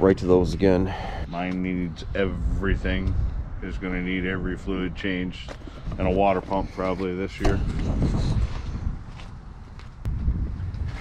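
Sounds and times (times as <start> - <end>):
wind buffeting microphone: 0.0 - 11.0
light footsteps on concrete: 7.4 - 11.0.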